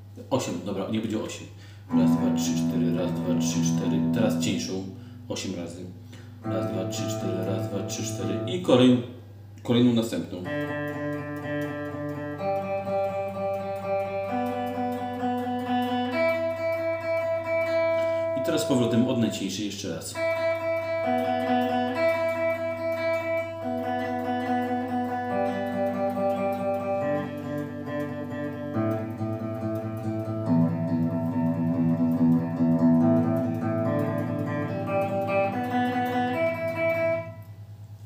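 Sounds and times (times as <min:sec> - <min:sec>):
electric guitar picking open strings: 0:01.9 - 0:09.0, 0:10.4 - 0:37.9.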